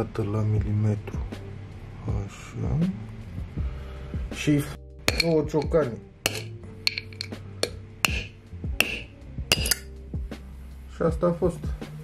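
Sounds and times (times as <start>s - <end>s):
background music: 0.0s - 12.0s
hammer blows on metal socket: 6.3s - 9.9s.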